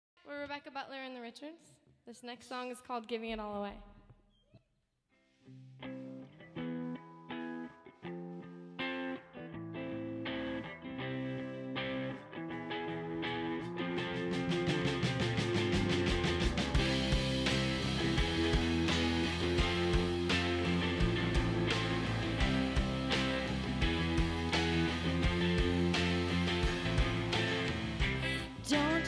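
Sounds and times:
electric guitar picked notes: 5.8 - 29.0
live band playing: 14.0 - 29.0.

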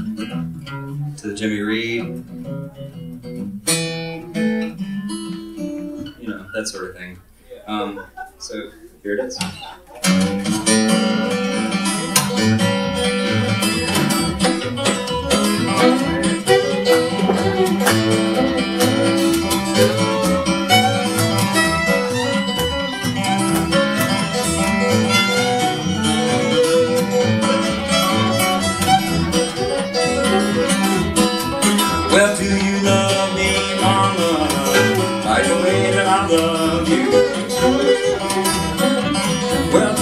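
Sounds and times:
acoustic guitar: 0.0 - 40.0
upright bass: 6.0 - 40.0
fiddle: 10.1 - 40.0.

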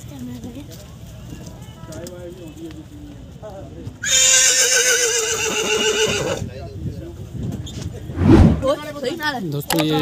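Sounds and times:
horse whinnying: 4.0 - 6.4.

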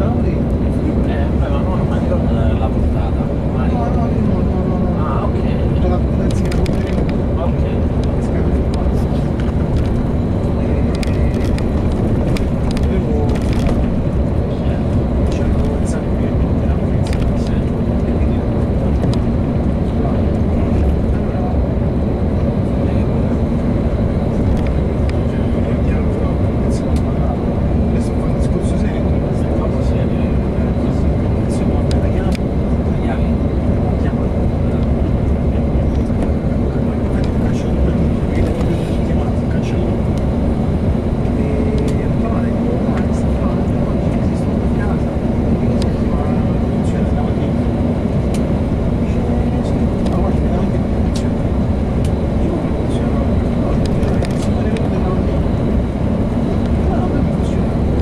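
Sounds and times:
coach engine hum: 0.0 - 58.0
tyre and road noise: 5.5 - 21.0.

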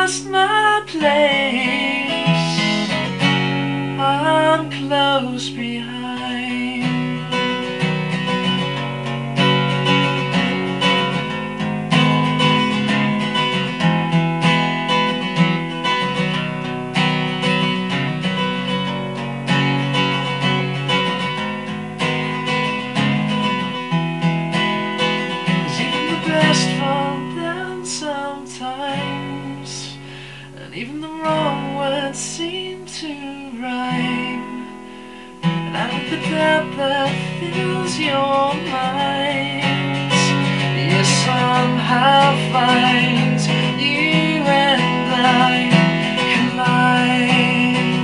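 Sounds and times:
person singing: 0.0 - 7.8, 25.6 - 48.0
acoustic guitar strumming: 0.0 - 48.0.

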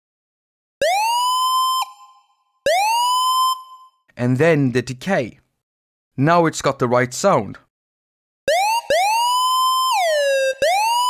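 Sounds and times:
synthesizer siren swooping up: 0.8 - 3.7, 8.5 - 11.0.

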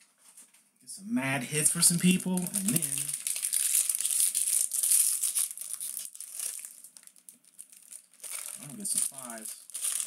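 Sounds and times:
foil wrappers crinkling: 2.0 - 10.0.

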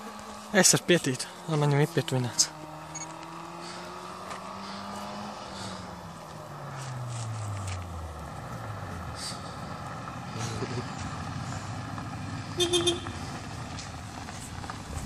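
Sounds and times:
car engine: 0.0 - 15.0
tyres on gravel: 0.0 - 15.0.

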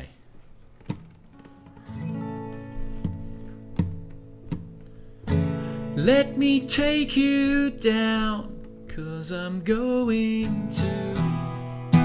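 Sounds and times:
acoustic guitar strummed: 0.8 - 12.0.

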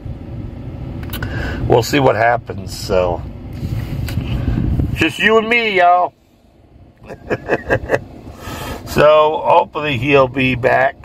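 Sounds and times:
hissing breath: 1.2 - 1.6, 8.3 - 8.9
man chuckling: 7.0 - 8.2.

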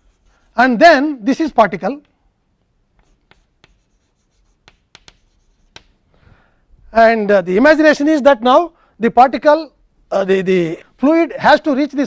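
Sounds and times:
chalk tapping on chalkboard: 2.9 - 6.0.

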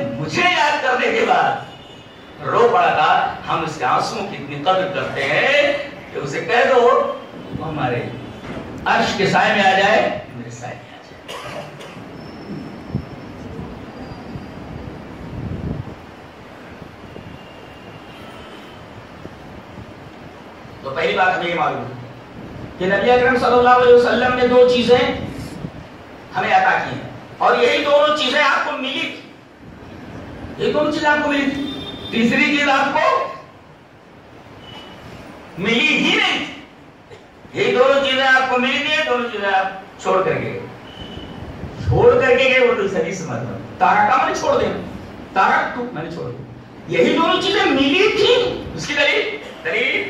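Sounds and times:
man speaking through microphones: 0.0 - 1.8, 2.4 - 11.9, 20.8 - 22.2, 22.8 - 25.7, 26.3 - 29.4, 30.5 - 33.6, 35.5 - 36.8, 37.5 - 40.8, 41.7 - 50.0
hall room noise: 0.0 - 50.0.

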